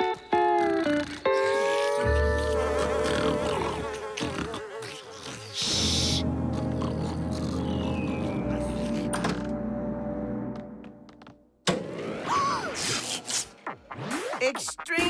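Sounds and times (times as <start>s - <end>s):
cartoon flies buzzing: 0.0s - 9.1s.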